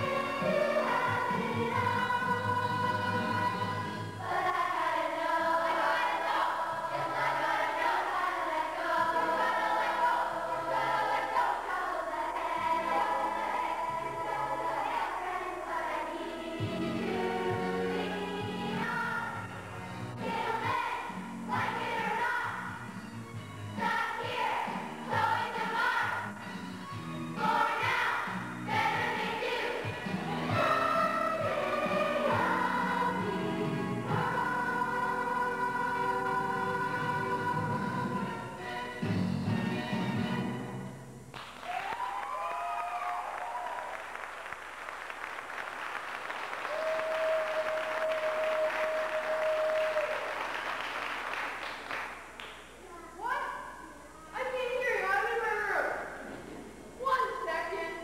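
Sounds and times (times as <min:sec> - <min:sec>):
children's choir singing: 0:00.0 - 0:22.9, 0:23.7 - 0:26.6, 0:27.3 - 0:40.6
audience applauding: 0:41.3 - 0:52.6
people whooping: 0:41.6 - 0:44.0, 0:46.6 - 0:50.5.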